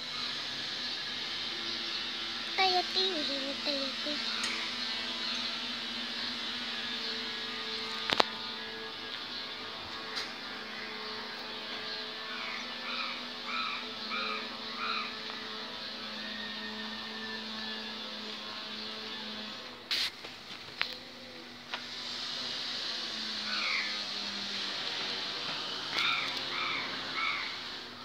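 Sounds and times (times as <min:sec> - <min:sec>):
low mechanical hum: 0:00.0 - 0:28.0
faint hiss: 0:19.9 - 0:20.4.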